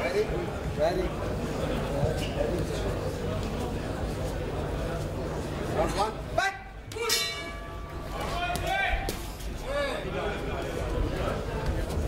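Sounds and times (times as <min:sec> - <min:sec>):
boxing bell ringing: 0:07.0 - 0:08.4.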